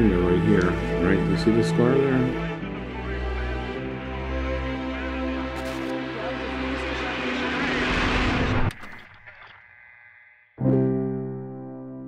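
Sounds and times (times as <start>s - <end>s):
held musical notes: 0.0s - 8.2s
whoosh noise swell: 6.3s - 8.9s.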